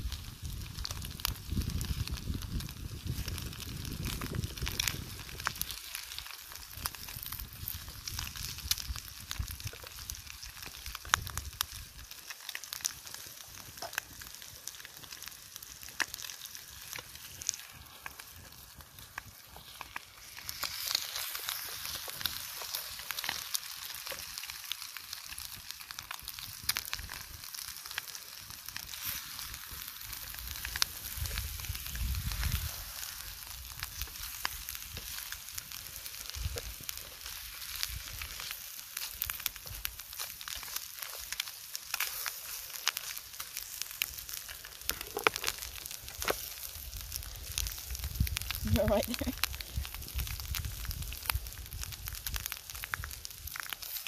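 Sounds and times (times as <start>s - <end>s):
bacon and eggs sizzling in pan: 0.0s - 54.0s
campfire pops and crackles: 0.0s - 54.0s.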